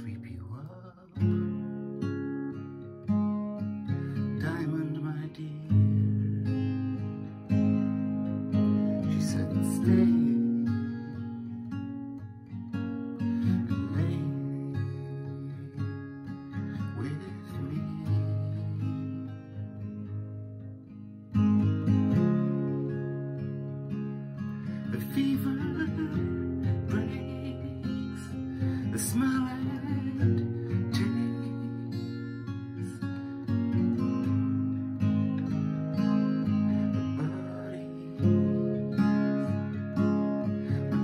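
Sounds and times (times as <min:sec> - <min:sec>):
acoustic guitar strummed chords: 0:00.0 - 0:41.0.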